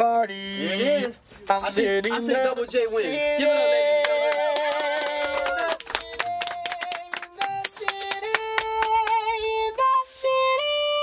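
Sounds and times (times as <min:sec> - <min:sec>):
hand clapping: 0:04.0 - 0:09.4.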